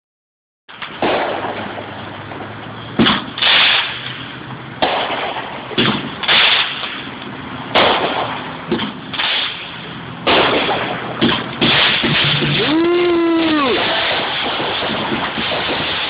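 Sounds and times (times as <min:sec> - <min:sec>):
fireworks banging: 0:00.7 - 0:16.0
fireworks hissing bursts: 0:03.2 - 0:04.3, 0:06.2 - 0:07.0, 0:09.1 - 0:10.9, 0:11.6 - 0:16.0.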